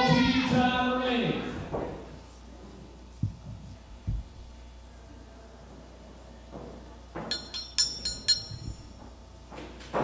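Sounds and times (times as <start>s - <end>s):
ring bell strikes: 7.3s - 8.9s.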